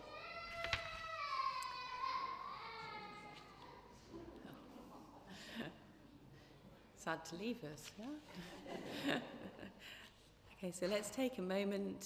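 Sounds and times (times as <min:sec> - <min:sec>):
young child crying: 0:00.0 - 0:03.9.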